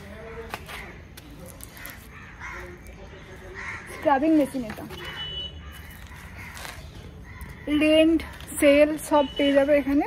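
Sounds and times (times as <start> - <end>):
harsh caw-like bird calls: 1.7 - 4.4, 5.1 - 8.1.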